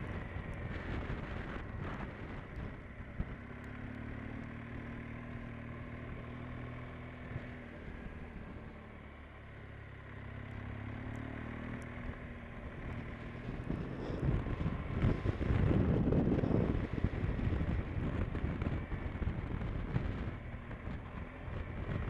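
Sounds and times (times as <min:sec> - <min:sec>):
motorcycle engine running: 0:00.0 - 0:22.0.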